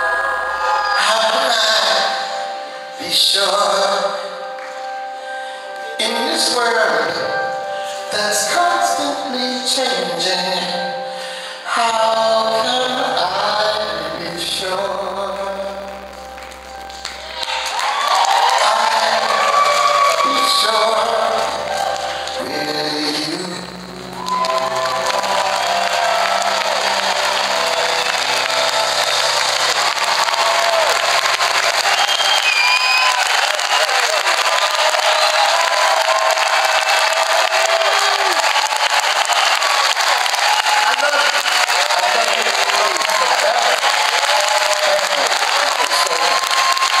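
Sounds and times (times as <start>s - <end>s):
audience applauding and cheering: 12.6s - 47.0s
audience shouts: 17.3s - 22.4s, 24.1s - 47.0s.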